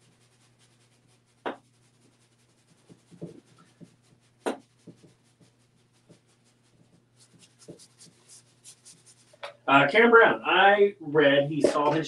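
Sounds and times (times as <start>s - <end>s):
brush stroking paint on canvas: 0.0s - 9.5s.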